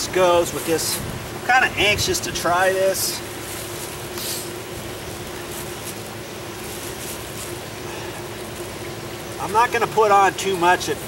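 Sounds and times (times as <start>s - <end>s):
soft hiss: 0.0s - 9.6s
steady mechanical hum: 0.0s - 11.0s.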